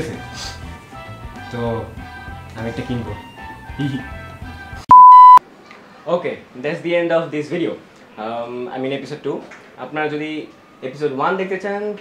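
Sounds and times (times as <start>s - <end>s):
faint background music: 0.0s - 4.8s, 5.5s - 12.0s
loud electronic beep: 4.9s - 5.4s.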